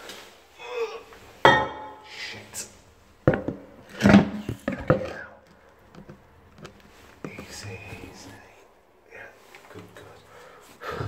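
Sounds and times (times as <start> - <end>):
sharp knocks and clatters: 3.2 - 7.5
faint voices: 6.6 - 11.0.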